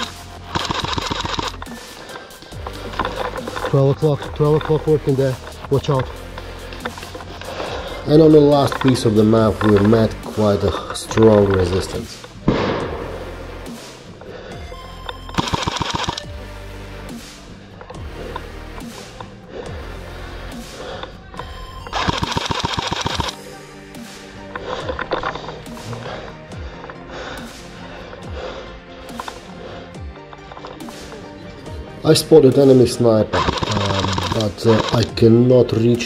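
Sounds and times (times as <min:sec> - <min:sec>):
airsoft rifle full-auto fire: 0:00.0 - 0:01.6, 0:15.4 - 0:16.2, 0:21.9 - 0:23.3, 0:33.4 - 0:35.0
background music: 0:00.0 - 0:36.0.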